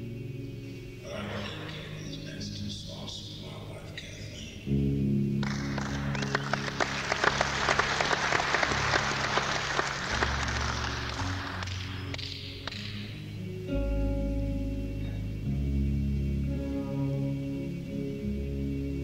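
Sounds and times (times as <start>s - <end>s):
band playing low sustained notes: 0.0s - 19.0s
audience applause: 5.4s - 13.2s.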